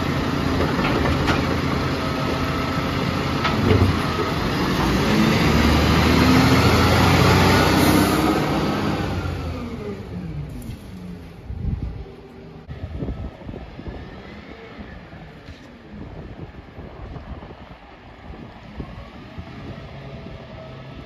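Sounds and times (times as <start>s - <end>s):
garbage truck diesel engine revving: 0.0s - 10.5s.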